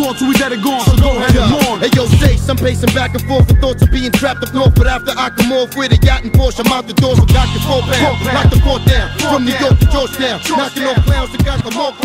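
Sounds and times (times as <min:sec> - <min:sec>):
hi-hats ticking: 0:00.0 - 0:12.0
rapping over a beat: 0:00.0 - 0:12.0
deep bass drum hits: 0:07.2 - 0:10.1.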